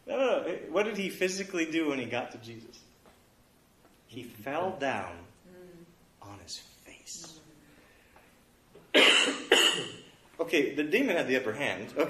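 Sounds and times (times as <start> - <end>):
person coughing: 8.9 - 10.1.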